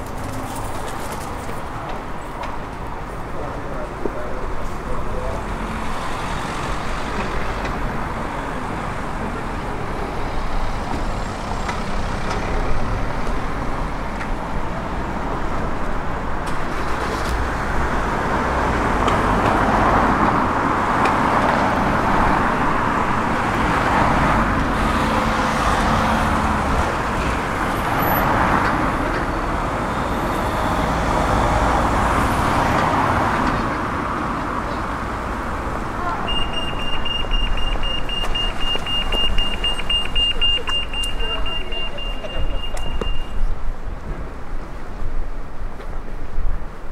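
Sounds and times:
vehicles passing by: 0:00.0 - 0:46.9.

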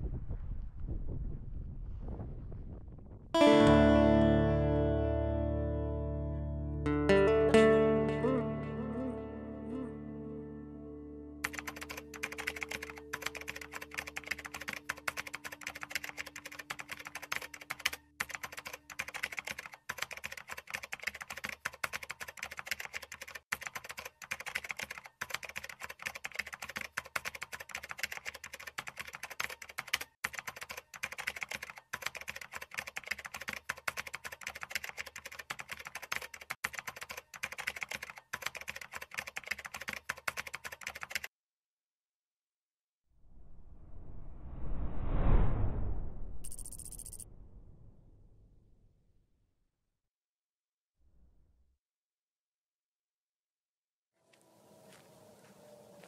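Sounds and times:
keyboard typing clicks: 0:11.4 - 0:41.3, 0:46.4 - 0:47.2.

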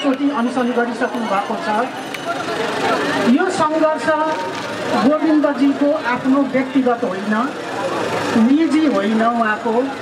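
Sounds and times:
woman speaking into a microphone: 0:00.0 - 0:01.9, 0:03.2 - 0:07.6, 0:08.3 - 0:10.0.

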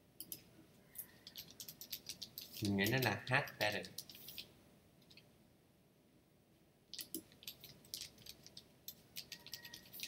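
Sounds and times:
computer keyboard typing: 0:01.0 - 0:05.2, 0:06.9 - 0:10.0.

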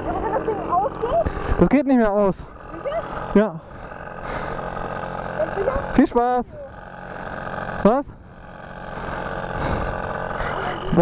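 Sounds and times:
small petrol engine running: 0:00.0 - 0:11.0.

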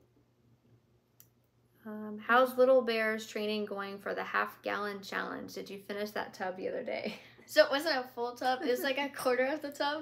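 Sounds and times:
woman speaking: 0:01.8 - 0:10.0.

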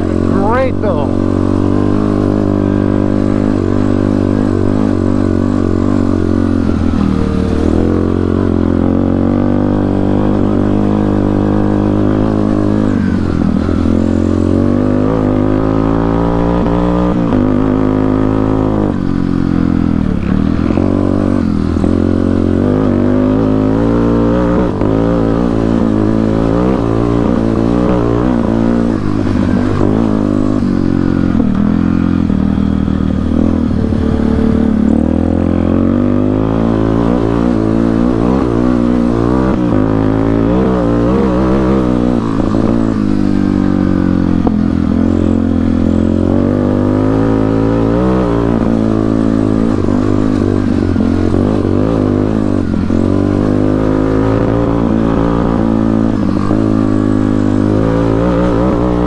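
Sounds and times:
quad bike engine revving: 0:00.0 - 0:59.0.

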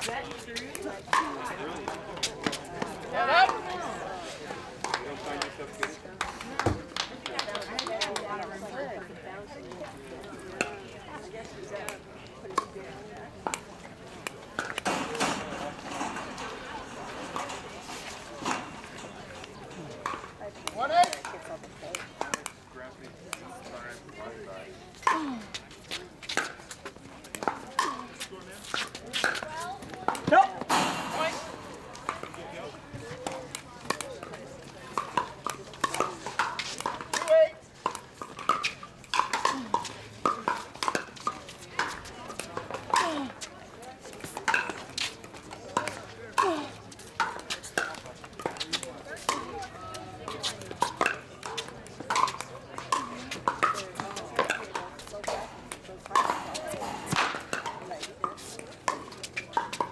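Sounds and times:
spectators murmuring: 0:00.0 - 0:59.9.

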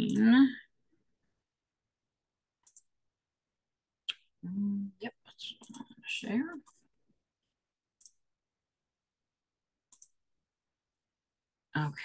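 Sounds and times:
faint computer mouse clicks: 0:02.6 - 0:02.9, 0:09.9 - 0:10.2.

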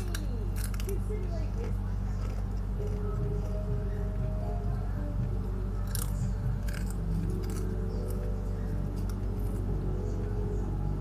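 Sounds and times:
crisps crunching: 0:00.0 - 0:03.6, 0:05.8 - 0:09.7
low hum: 0:00.0 - 0:11.0.

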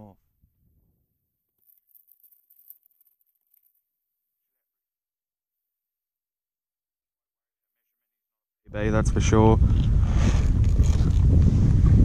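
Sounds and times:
clicks and rustles of handling gear: 0:01.4 - 0:04.4.

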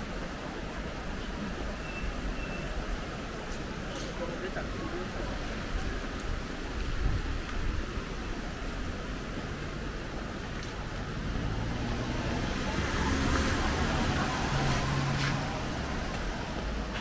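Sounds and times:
wind buffeting microphone: 0:05.1 - 0:16.9
truck engine passing on wet pavement: 0:08.4 - 0:17.0.

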